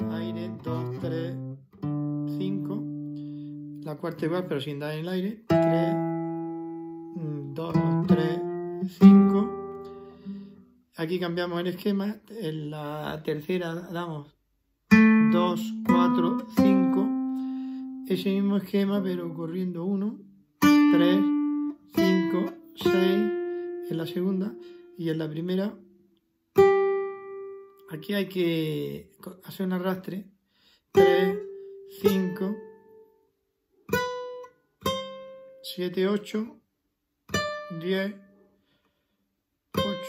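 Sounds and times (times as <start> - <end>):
classical guitar notes plucked: 0.0 - 11.9, 14.9 - 28.1, 30.9 - 33.1, 33.9 - 35.6, 37.3 - 38.3, 39.7 - 40.0
plucked guitar note: 5.5 - 10.6, 14.9 - 19.3.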